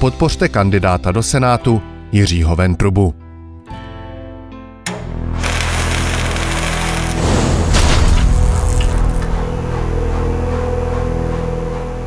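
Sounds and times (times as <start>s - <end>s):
deep boom: 7.2s - 11.1s
held drone of steady tones: 9.1s - 12.0s.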